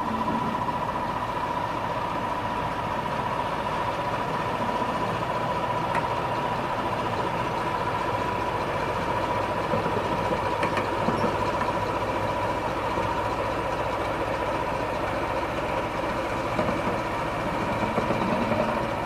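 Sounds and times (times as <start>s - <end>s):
diesel locomotive engine running: 0.0s - 19.0s.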